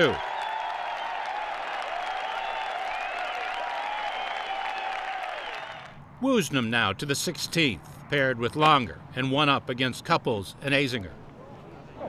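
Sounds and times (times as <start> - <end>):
crowd cheering voices: 0.0 - 6.0
crowd clapping: 0.0 - 6.0.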